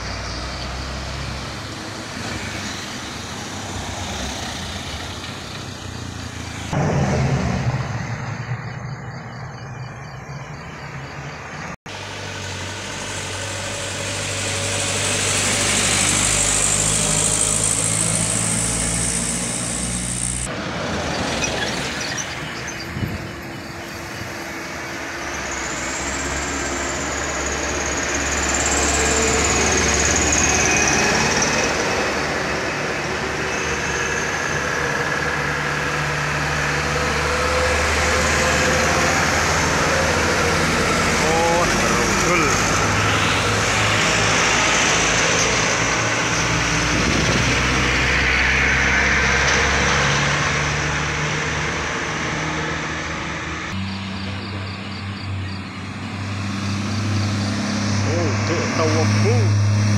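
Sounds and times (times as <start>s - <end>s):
diesel truck engines passing: 0.0s - 59.9s.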